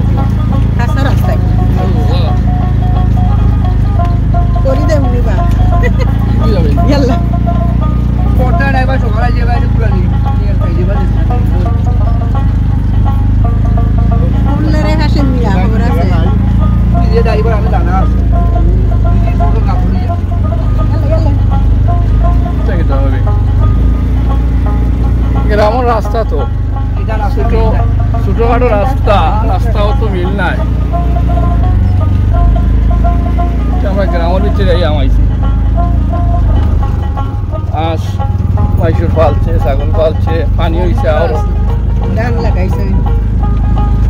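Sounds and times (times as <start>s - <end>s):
auto-rickshaw engine rumble: 0.0s - 44.0s.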